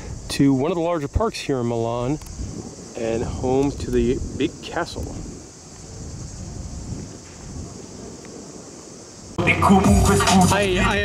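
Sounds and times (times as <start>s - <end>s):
wind rumbling on microphone: 0.0s - 9.4s
high insect drone: 0.0s - 11.0s.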